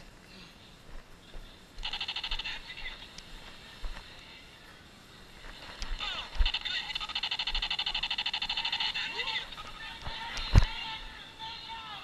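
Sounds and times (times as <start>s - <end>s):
laser tag gun firing: 1.8s - 2.7s, 6.4s - 9.2s.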